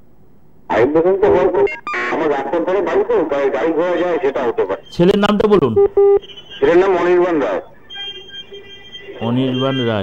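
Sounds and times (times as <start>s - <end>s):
speech over telephone line: 0.7s - 10.0s
telephone beep: 5.8s - 7.2s.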